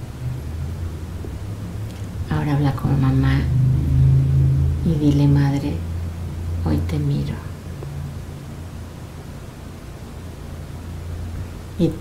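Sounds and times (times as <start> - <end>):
steady low hum: 0.0 - 12.0
woman speaking softly: 2.3 - 3.5, 4.8 - 5.8, 6.6 - 7.6, 11.8 - 12.0.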